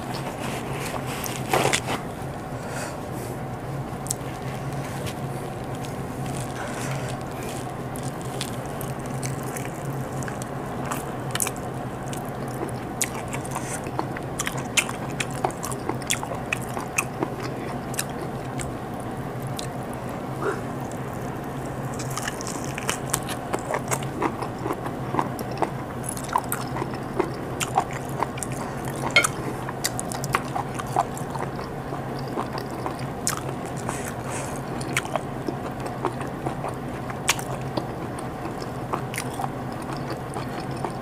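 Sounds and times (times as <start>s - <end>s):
chewing chicken: 0.0s - 41.0s
steady low hum: 0.0s - 41.0s.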